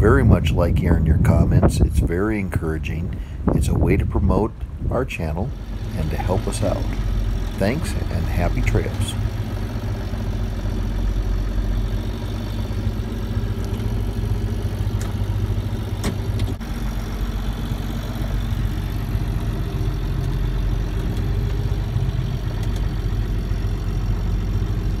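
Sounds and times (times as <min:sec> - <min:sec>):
tractor diesel engine running: 0:00.0 - 0:25.0
faint clicks: 0:22.4 - 0:22.9.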